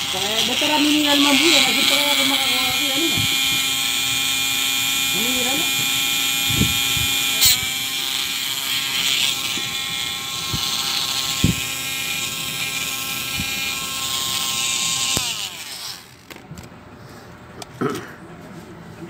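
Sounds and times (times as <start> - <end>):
rotary tool whining: 0.0 - 16.5.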